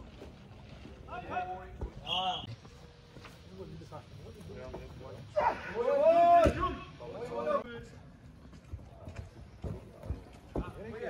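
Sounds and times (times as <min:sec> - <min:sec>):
person shouting: 0:05.3 - 0:06.8.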